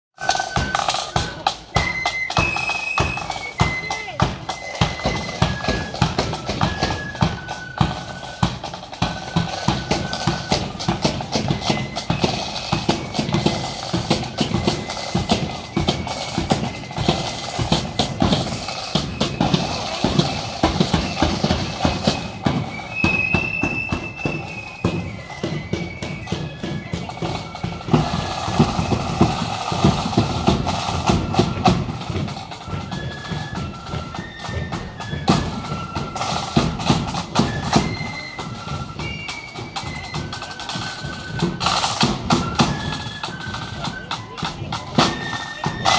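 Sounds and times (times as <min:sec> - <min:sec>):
flute band playing a march: 0:00.2 - 0:45.9
rolling side drums: 0:00.2 - 0:45.9.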